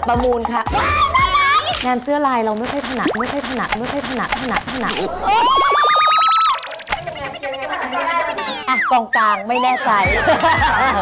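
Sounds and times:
warbling rising whistle tone: 0:04.7 - 0:10.2.

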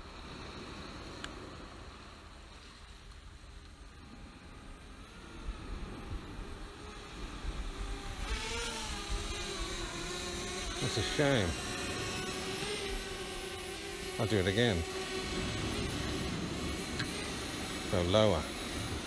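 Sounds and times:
steady background hiss: 0:00.0 - 0:19.0
drone propellers buzzing: 0:03.8 - 0:19.0.

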